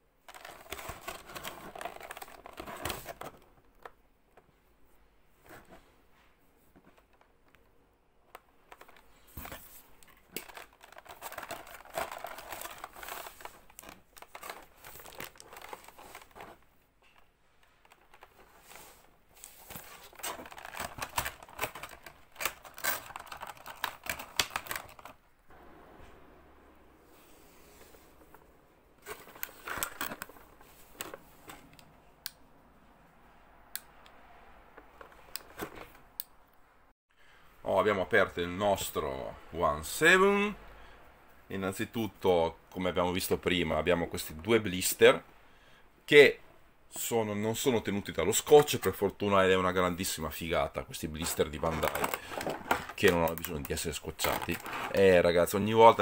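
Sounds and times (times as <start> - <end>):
plastic blister tray crinkling: 0.2 - 4.0, 8.3 - 25.2, 51.1 - 56.0.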